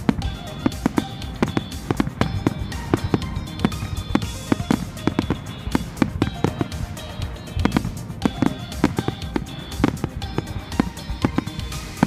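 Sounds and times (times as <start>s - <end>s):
fireworks shells bursting: 0.0s - 12.0s
music playing: 0.0s - 12.0s.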